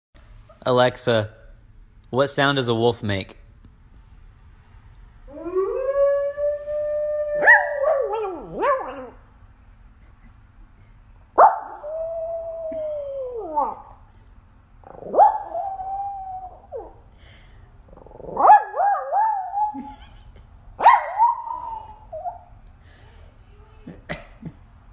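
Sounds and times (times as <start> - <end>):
recorded wolf howl: 5.3 - 9.2, 14.9 - 17.0
small dog howling: 5.3 - 9.2, 11.4 - 14.0, 14.8 - 17.0, 18.0 - 19.8, 20.8 - 22.5.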